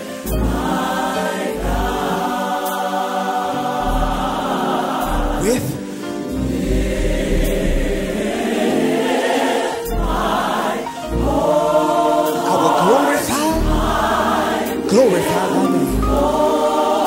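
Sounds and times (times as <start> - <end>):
choir singing in harmony: 0.0 - 17.0
deep bass notes: 3.8 - 5.8, 6.4 - 8.3, 13.5 - 14.2
band playing: 3.8 - 5.9, 14.7 - 16.4.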